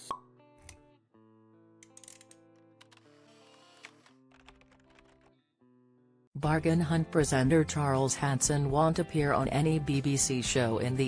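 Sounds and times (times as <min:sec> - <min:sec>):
quiet background music: 0:06.4 - 0:11.0.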